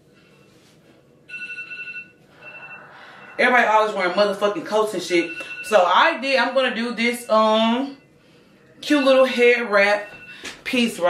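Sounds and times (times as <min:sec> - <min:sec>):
phone alarm beeps: 0:01.3 - 0:03.6, 0:05.1 - 0:08.1, 0:08.8 - 0:10.5.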